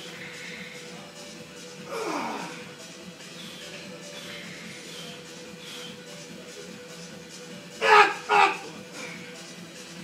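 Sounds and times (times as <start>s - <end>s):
background music: 0.0s - 10.0s
man shouting: 7.8s - 8.7s.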